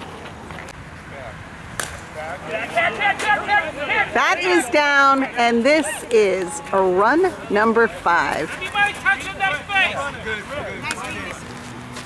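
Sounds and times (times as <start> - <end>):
faint voices: 2.1 - 11.7.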